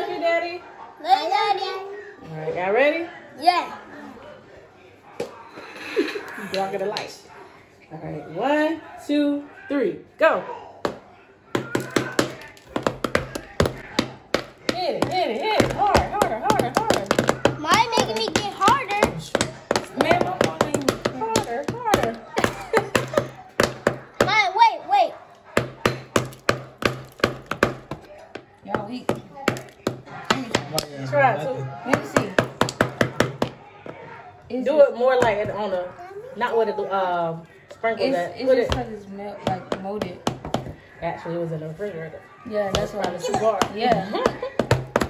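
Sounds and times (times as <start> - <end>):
mallets knocking chocolate shell: 11.6 - 24.4, 25.6 - 30.9, 31.9 - 33.6, 42.7 - 45.0.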